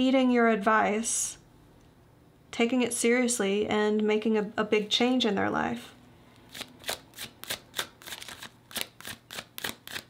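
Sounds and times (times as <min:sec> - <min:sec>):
cards being shuffled: 0:06.4 - 0:10.0.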